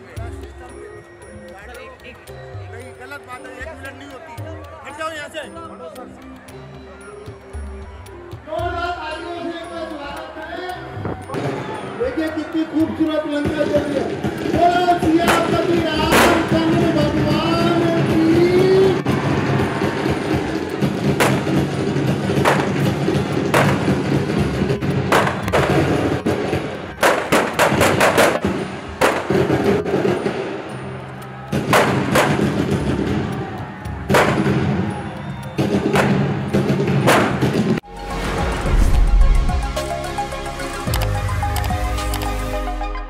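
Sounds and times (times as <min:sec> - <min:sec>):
music: 0:00.0 - 0:43.0
firecrackers banging: 0:13.3 - 0:30.9, 0:31.5 - 0:39.9.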